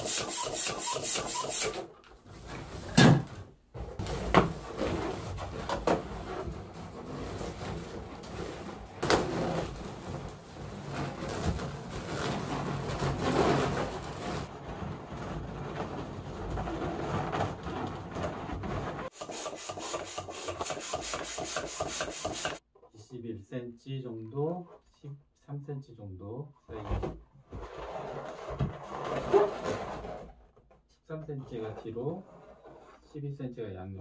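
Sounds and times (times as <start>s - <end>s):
balloons rubbing together: 0.0s - 1.8s, 4.0s - 14.5s, 19.0s - 22.6s.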